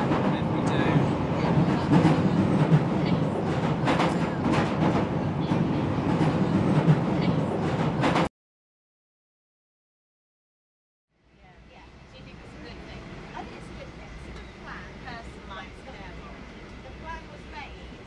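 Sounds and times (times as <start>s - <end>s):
underground train rumbling: 0.0s - 8.3s, 11.2s - 18.0s.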